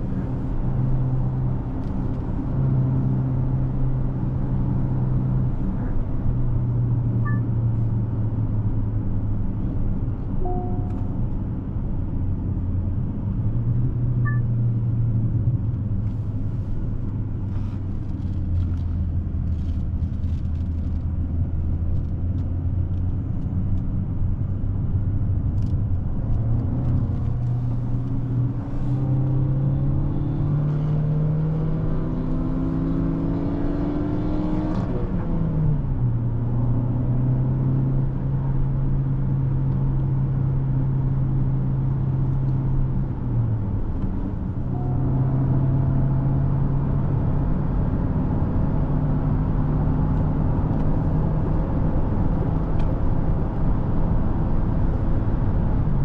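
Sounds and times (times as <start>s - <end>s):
car engine hum: 0.0s - 56.0s
tyre and road noise: 0.0s - 56.0s.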